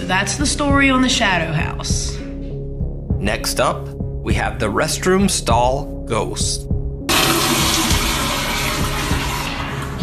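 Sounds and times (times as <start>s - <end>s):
background music with low beat: 0.0s - 10.0s
toilet flushing: 7.1s - 10.0s.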